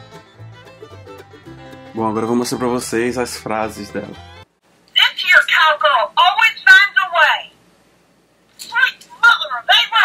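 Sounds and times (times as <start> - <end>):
talking doll voice phrases: 5.0 - 7.5, 8.6 - 10.0.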